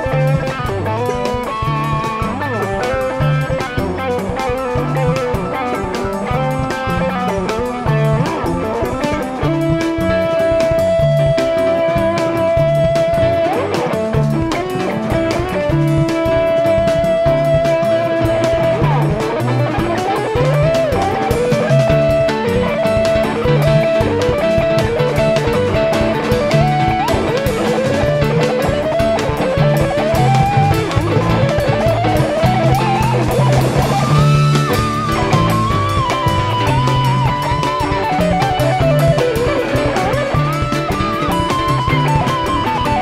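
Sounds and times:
bass line: 0:00.0 - 0:43.0
drums: 0:00.0 - 0:43.0
electric guitar lead: 0:00.0 - 0:43.0.

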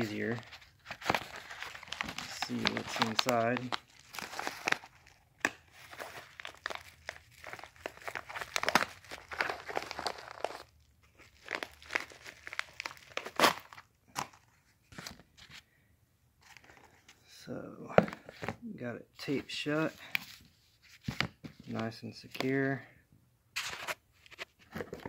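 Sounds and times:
plastic envelope crinkling: 0:00.0 - 0:15.6.

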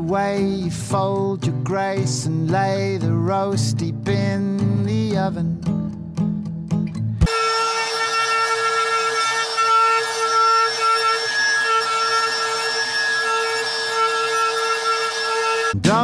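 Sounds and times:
router cutting wood: 0:07.2 - 0:16.0.

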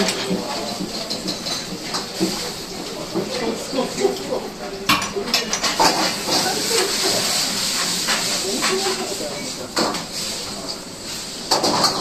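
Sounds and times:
steam hissing: 0:06.0 - 0:11.9.

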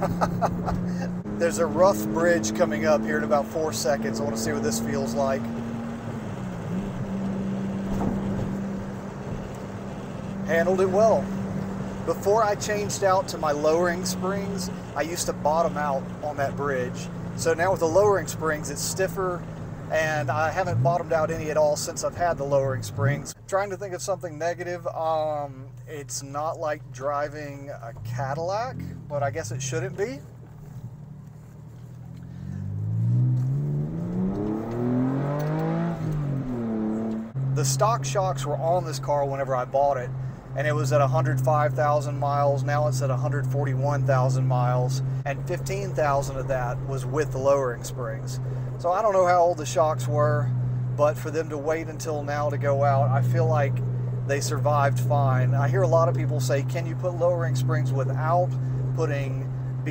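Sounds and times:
car engine droning: 0:00.0 - 0:59.9
tyre and road noise: 0:00.0 - 0:59.9.

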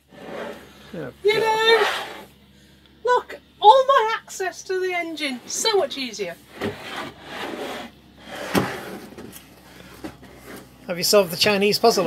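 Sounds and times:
wooden step rubbing and scraping: 0:06.5 - 0:09.4.

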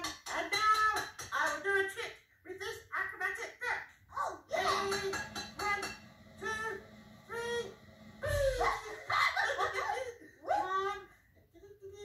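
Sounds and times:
puppets giggling: 0:08.3 - 0:10.8.

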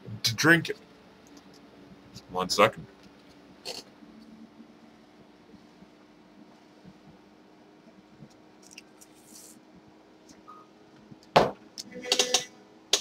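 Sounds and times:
faint steady hum: 0:00.0 - 0:13.0
loud knock: 0:11.4 - 0:11.6.

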